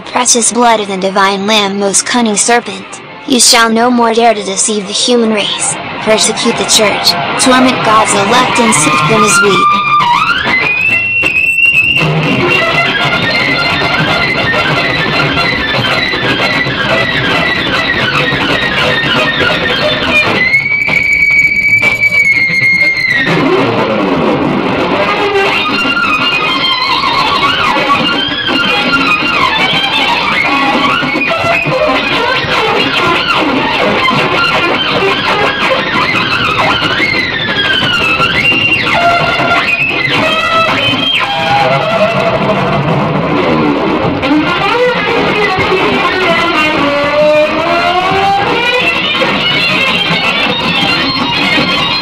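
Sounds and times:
electric guitar sustained note: 0:04.6 - 0:52.0.

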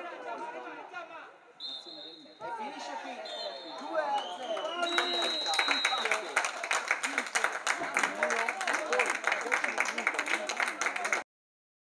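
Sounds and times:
referee's pea whistle blasts: 0:01.6 - 0:02.4, 0:03.1 - 0:06.3
hand clapping: 0:04.1 - 0:11.2.

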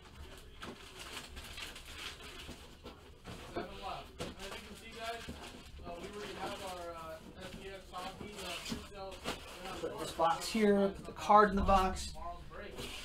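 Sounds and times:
handling rustles: 0:00.1 - 0:13.0.

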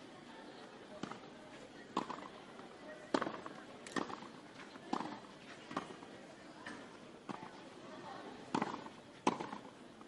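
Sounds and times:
crowd murmur: 0:00.0 - 0:10.0
tennis ball bouncing on clay: 0:01.0 - 0:01.3, 0:01.9 - 0:07.6, 0:08.2 - 0:09.8.

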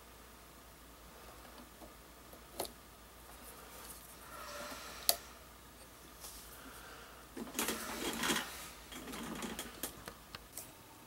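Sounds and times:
faint scraping and rattling: 0:03.2 - 0:10.7.

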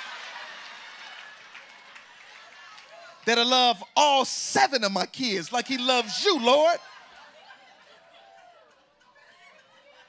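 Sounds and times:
audience applauding: 0:00.0 - 0:04.8
audience laughing: 0:05.2 - 0:08.0.

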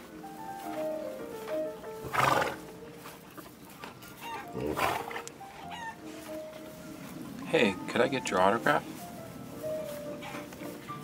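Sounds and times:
faint background music: 0:00.0 - 0:11.0
horse whinnying: 0:02.0 - 0:02.6, 0:04.2 - 0:06.0.

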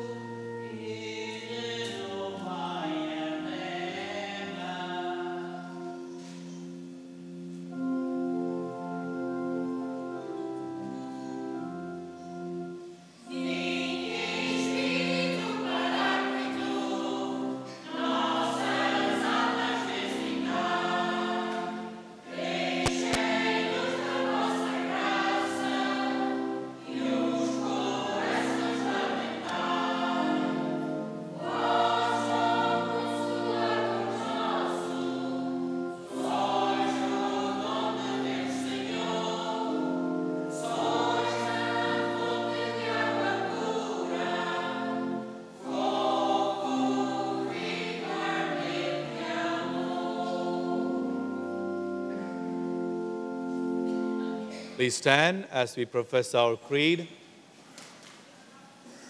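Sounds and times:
church choir singing a hymn: 0:00.0 - 0:54.9.

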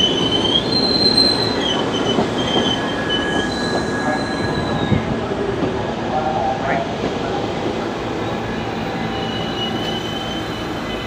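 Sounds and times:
high-pitched wheel squeals: 0:00.0 - 0:05.1, 0:08.2 - 0:11.0
subway train wheels rumbling: 0:00.0 - 0:11.0.

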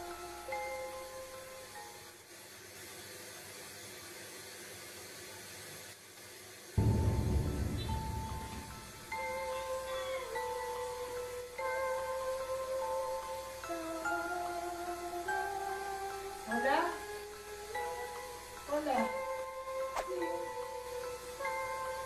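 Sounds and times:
faint steady hiss: 0:00.0 - 0:22.0.

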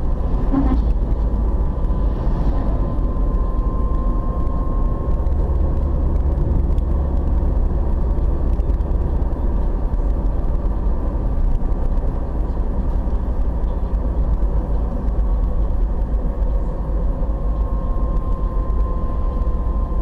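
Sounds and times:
car engine and tyres rumbling: 0:00.0 - 0:20.0.

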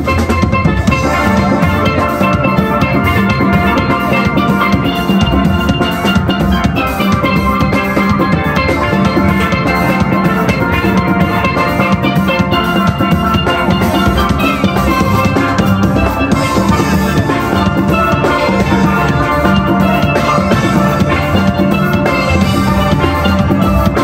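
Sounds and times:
steady drum beat: 0:00.0 - 0:24.0
steel pans ringing: 0:00.0 - 0:24.0
low bass pans: 0:00.6 - 0:23.8.

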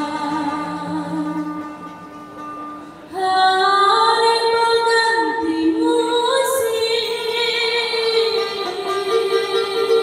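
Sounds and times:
woman singing: 0:00.0 - 0:01.7, 0:03.1 - 0:10.0
regional song music: 0:00.0 - 0:10.0.

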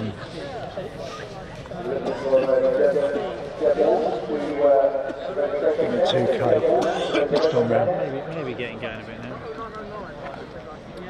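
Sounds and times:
men talking: 0:01.7 - 0:11.0.

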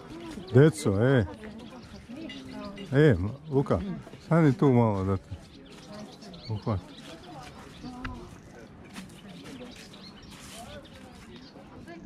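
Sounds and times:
faint background talk: 0:00.0 - 0:12.0.

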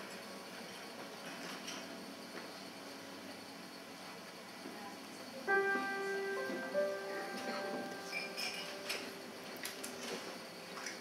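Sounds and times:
keyboard notes ringing: 0:05.5 - 0:09.6.

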